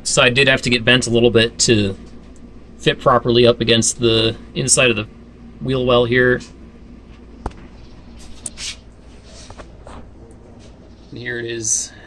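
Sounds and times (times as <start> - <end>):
low background hum: 0.0 - 12.0
faint rustles and scrapes: 7.1 - 11.6.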